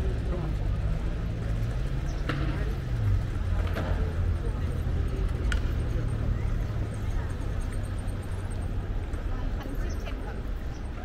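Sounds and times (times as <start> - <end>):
faint voices of passers-by: 0.0 - 11.0.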